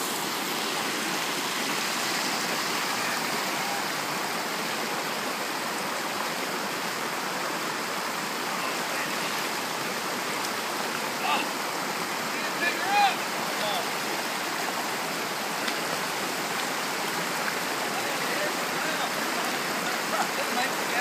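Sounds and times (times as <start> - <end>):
stream rushing over rocks: 0.0 - 21.0.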